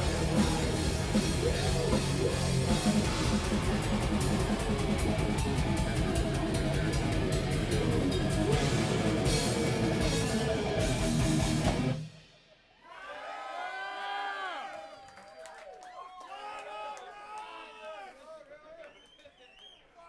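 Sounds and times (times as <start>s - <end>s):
crowd whooping and cheering: 0.0s - 8.9s, 12.8s - 20.0s
live rock band playing: 0.0s - 12.3s.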